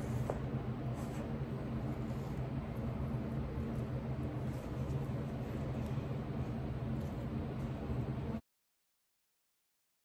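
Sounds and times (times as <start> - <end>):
low mechanical hum: 0.0 - 8.4.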